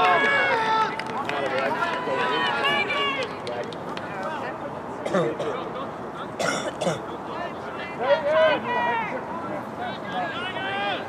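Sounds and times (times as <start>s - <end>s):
voices shouting and calling out: 0.0s - 11.0s.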